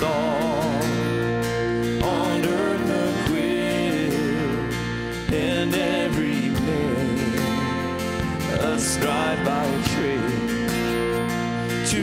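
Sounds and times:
person singing: 0:00.0 - 0:01.4, 0:02.0 - 0:10.6
keyboard: 0:00.0 - 0:12.0
strummed acoustic guitar: 0:00.0 - 0:12.0.

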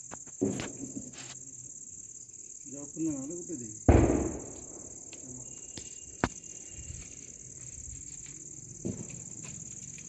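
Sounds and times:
crickets chirring: 0:00.0 - 0:10.0.

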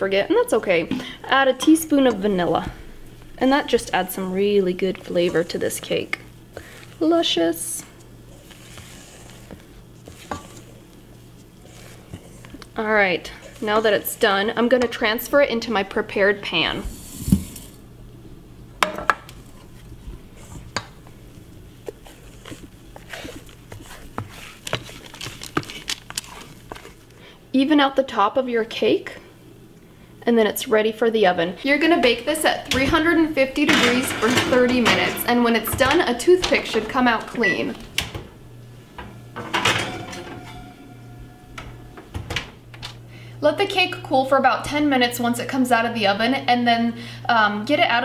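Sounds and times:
batter scraped into metal pan: 0:08.3 - 0:10.8
metal oven rack clatter: 0:32.7 - 0:37.0, 0:39.4 - 0:42.5
metal bowl and spatula clinking: 0:39.5 - 0:41.9.

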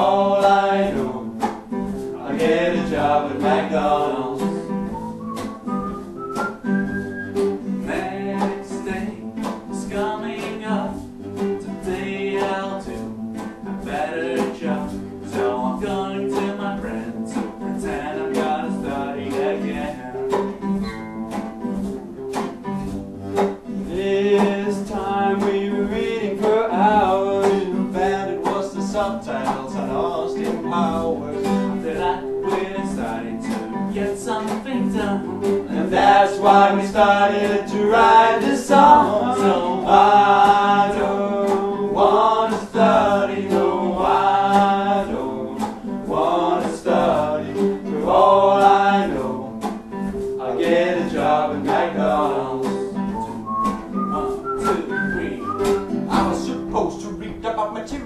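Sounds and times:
men singing: 0:00.0 - 0:05.2, 0:07.8 - 0:20.7, 0:23.6 - 0:58.0
acoustic guitars strumming: 0:00.0 - 0:58.0.

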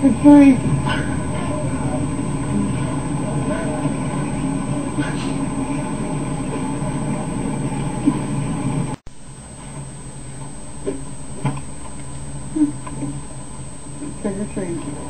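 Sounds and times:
indistinct voices talking: 0:00.0 - 0:09.0, 0:13.8 - 0:15.0
steady low hum: 0:00.0 - 0:15.0.

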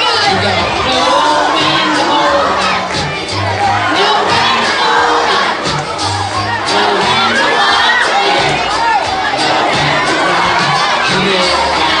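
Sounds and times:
children shouting and cheering: 0:00.0 - 0:12.0
loud music with bass line: 0:00.0 - 0:12.0.

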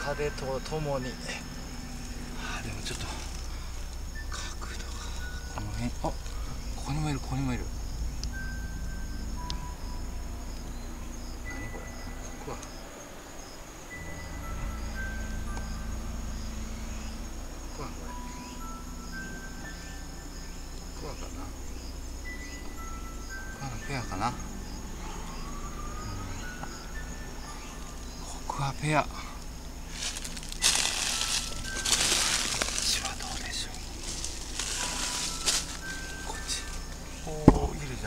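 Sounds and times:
insects trilling: 0:00.0 - 0:38.0
pulsed insect chirp: 0:00.0 - 0:38.0.

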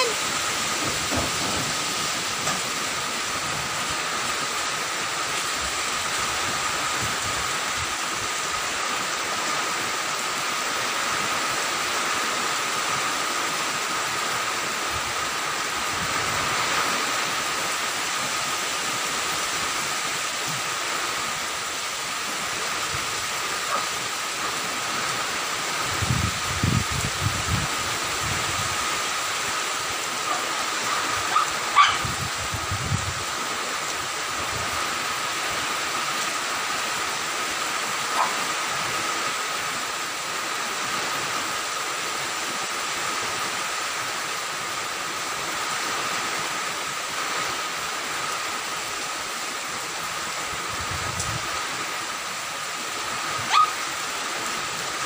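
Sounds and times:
wind gusts buffeting microphone: 0:00.0 - 0:08.6, 0:14.7 - 0:18.4, 0:22.4 - 0:34.9, 0:50.1 - 0:51.9
heavy rain: 0:00.0 - 0:55.0
storm wind: 0:00.0 - 0:55.0.

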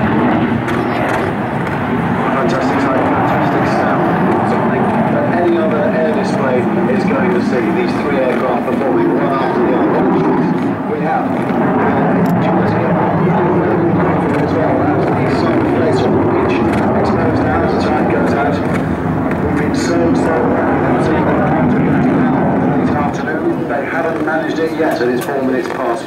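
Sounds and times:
jet fighter noise: 0:00.0 - 0:26.0.

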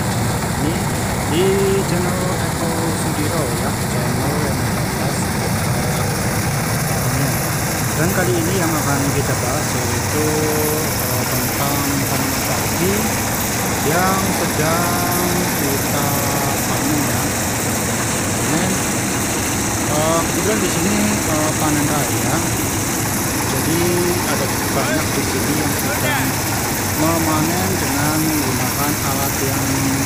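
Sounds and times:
small petrol engine running: 0:00.0 - 0:30.0
thresher drum stripping grain: 0:00.0 - 0:30.0
people's voices: 0:00.6 - 0:17.6, 0:18.4 - 0:19.1, 0:19.8 - 0:22.8, 0:23.4 - 0:30.0.

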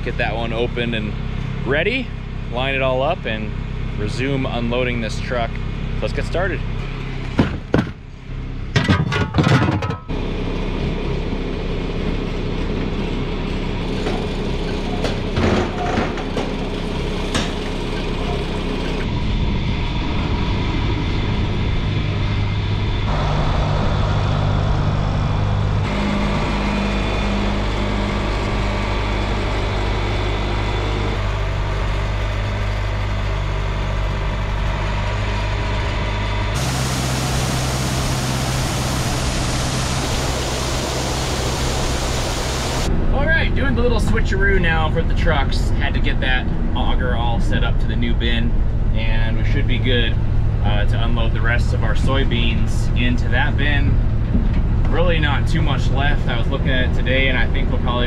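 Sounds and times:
tractor engine running: 0:10.0 - 0:58.0.

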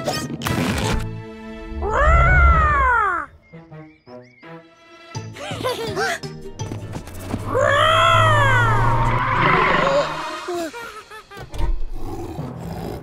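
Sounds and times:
growls: 0:11.9 - 0:13.0.

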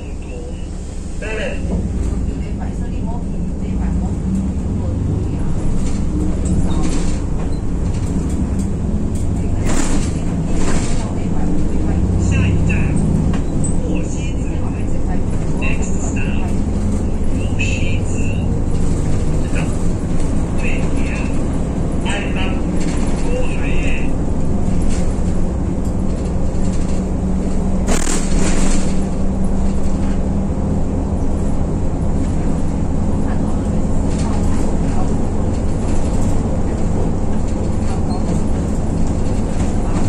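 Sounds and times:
bus engine drone: 0:00.0 - 0:40.0.

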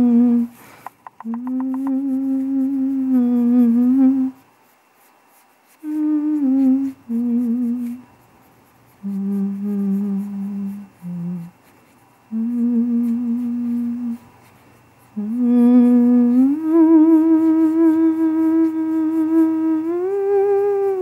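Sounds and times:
woman humming a slow tune: 0:00.0 - 0:00.6, 0:01.2 - 0:04.4, 0:05.8 - 0:08.1, 0:09.0 - 0:11.7, 0:12.3 - 0:14.3, 0:15.2 - 0:21.0.

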